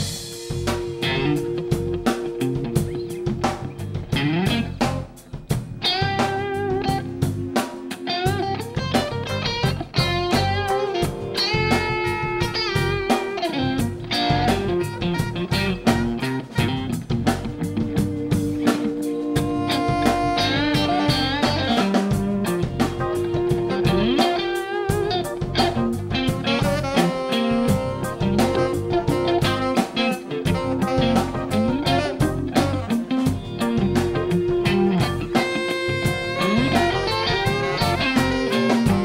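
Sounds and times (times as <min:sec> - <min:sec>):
electric guitar: 0:00.0 - 0:39.0
steady drum beat: 0:00.0 - 0:39.0.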